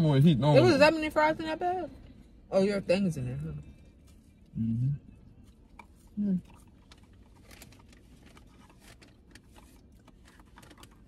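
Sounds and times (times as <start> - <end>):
low steady rumble: 0.0 - 11.0
food packaging crinkling: 6.8 - 11.0.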